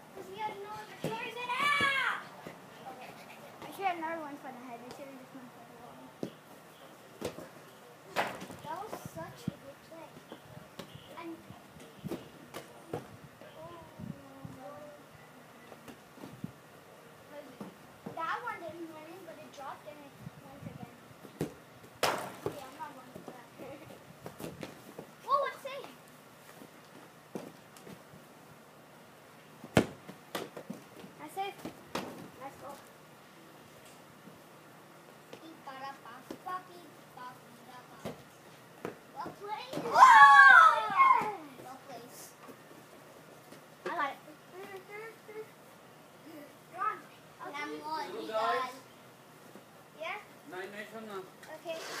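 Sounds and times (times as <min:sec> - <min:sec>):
children's voices and shouts: 0:00.2 - 0:03.7, 0:39.2 - 0:42.3
soccer ball kick thuds: 0:29.6 - 0:32.3
ball kicked knocks: 0:29.7 - 0:30.6
child crying out: 0:39.9 - 0:41.4.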